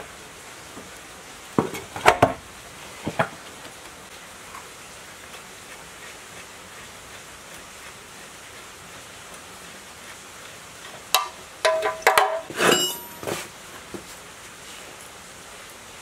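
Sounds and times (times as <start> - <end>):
steady low hiss: 0.0 - 16.0.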